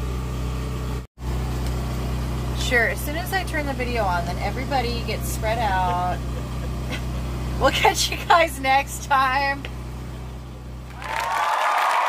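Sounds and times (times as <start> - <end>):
low mechanical hum: 0.0 - 11.5.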